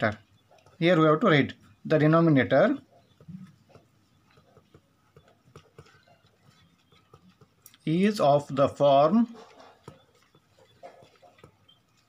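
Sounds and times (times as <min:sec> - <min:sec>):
pen writing on paper: 0:03.0 - 0:07.6.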